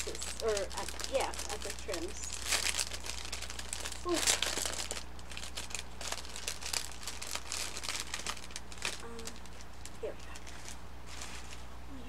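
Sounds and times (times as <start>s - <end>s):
plastic packaging crinkling: 0.0s - 11.8s.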